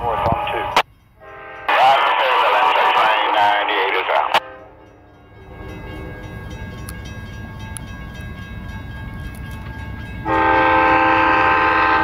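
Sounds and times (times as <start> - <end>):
locomotive air horn blast: 1.2 - 1.7, 10.2 - 12.0.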